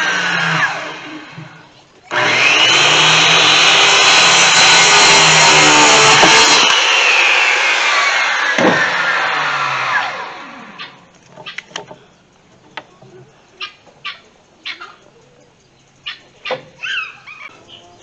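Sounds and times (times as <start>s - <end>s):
circular saw cutting wood: 0.0s - 11.0s.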